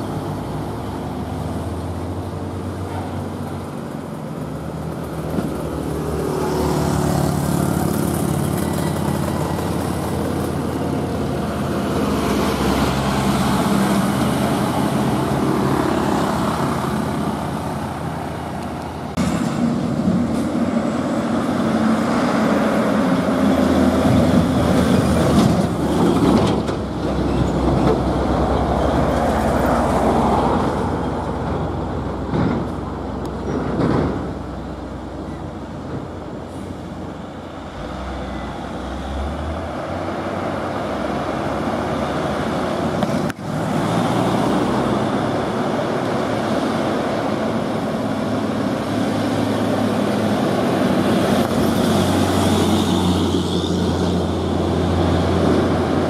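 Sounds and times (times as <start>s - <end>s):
traffic: 0.0s - 56.0s
truck diesel engine approaching: 0.0s - 56.0s
truck diesel engine pulling uphill: 0.0s - 56.0s.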